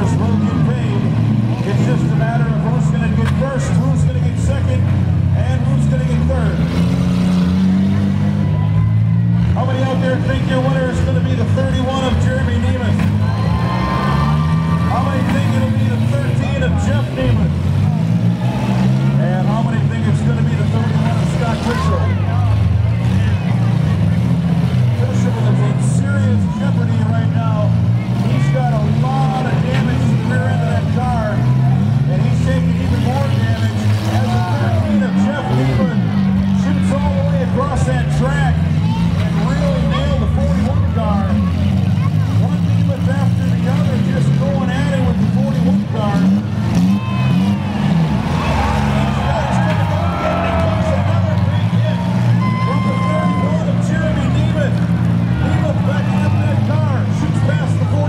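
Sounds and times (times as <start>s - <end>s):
car engines revving hard: 0.0s - 58.0s.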